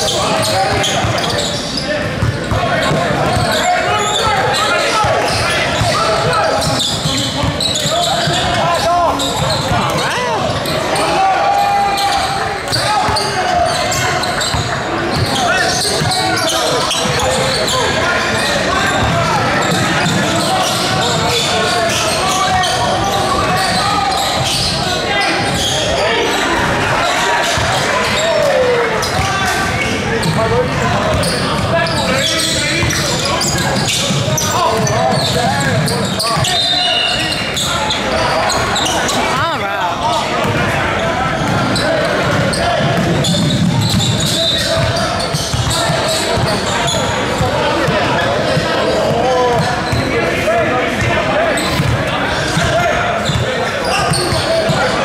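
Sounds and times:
echoing voices of crowd: 0:00.0 - 0:55.0
basketball bouncing: 0:02.1 - 0:03.5, 0:41.4 - 0:46.5, 0:51.7 - 0:52.0.

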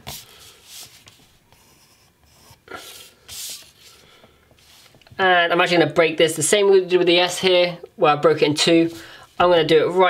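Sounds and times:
pencil rubbing on paper: 0:00.0 - 0:04.0.

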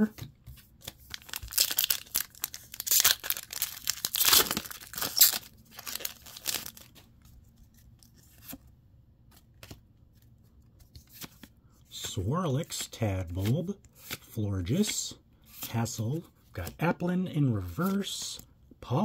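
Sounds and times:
foil wrapper tearing and crinkling: 0:01.0 - 0:06.9
soft clicks of cards handled: 0:09.3 - 0:11.6.

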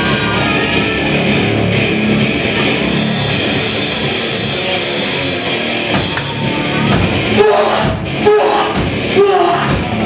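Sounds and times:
punk band playing live: 0:00.0 - 0:10.0.

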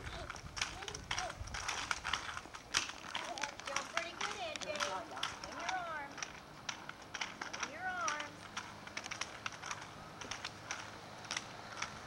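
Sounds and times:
plastic roller skates on concrete: 0:00.0 - 0:12.0.

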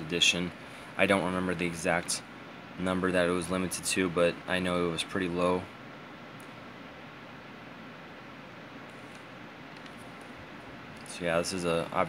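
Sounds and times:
low hiss: 0:00.0 - 0:12.0.

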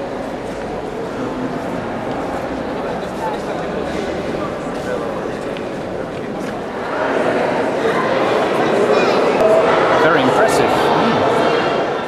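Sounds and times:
chatter of many people: 0:00.0 - 0:12.0.

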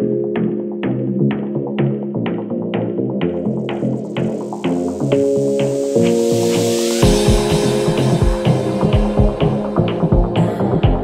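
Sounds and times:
electro house dance music: 0:03.2 - 0:11.0.

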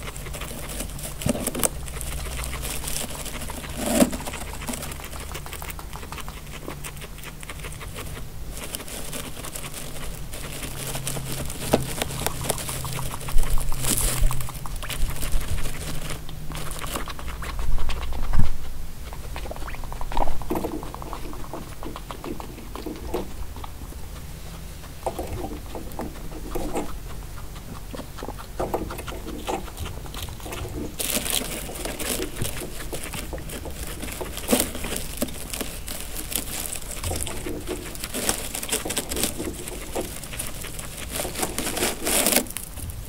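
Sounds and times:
guinea pigs chewing hay: 0:00.0 - 0:43.0.

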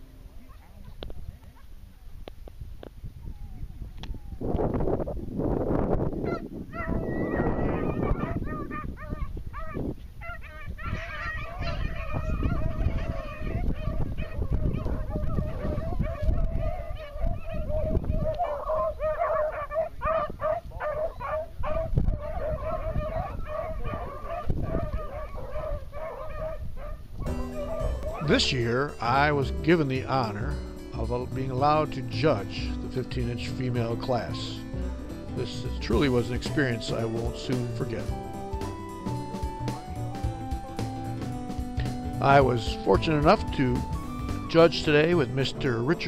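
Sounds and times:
dogs baying: 0:06.2 - 0:28.8.

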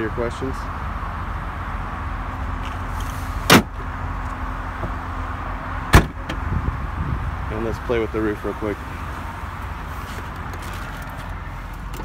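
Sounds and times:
low outdoor rumble: 0:00.0 - 0:12.0
car tailgate slamming: 0:03.4 - 0:03.8, 0:05.9 - 0:06.4.

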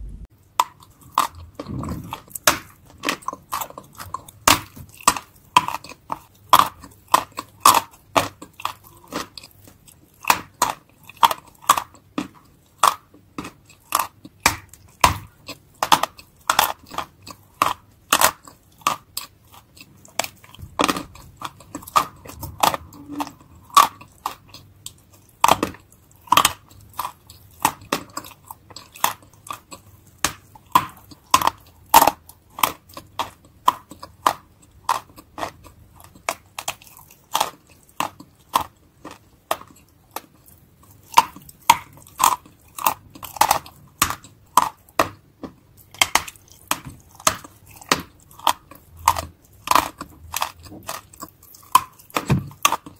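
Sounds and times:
chewing crunches: 0:00.4 - 0:52.9.

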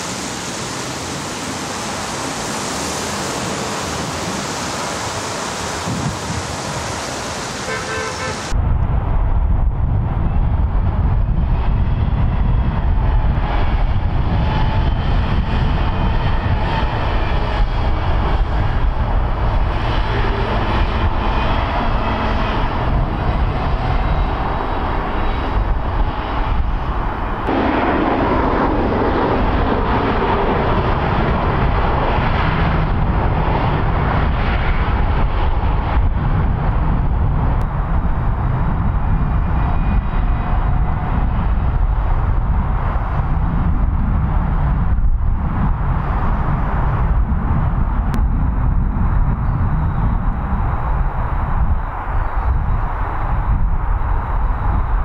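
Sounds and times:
tyres on wet tarmac: 0:00.0 - 0:08.6
loud engine rumble: 0:11.1 - 0:49.3.

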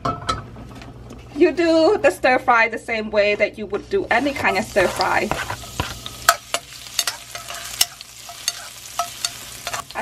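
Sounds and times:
metal spatula scraping wok: 0:04.1 - 0:10.0
garlic sizzling in hot oil: 0:04.2 - 0:10.0.

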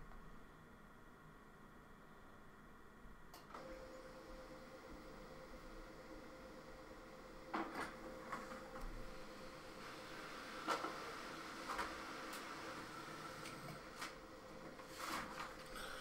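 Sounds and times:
printer hum: 0:00.0 - 0:16.0
printer paper feed clunks: 0:07.4 - 0:16.0.

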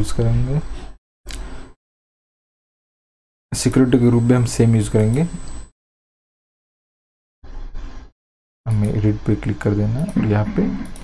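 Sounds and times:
man speaking: 0:08.7 - 0:10.8.

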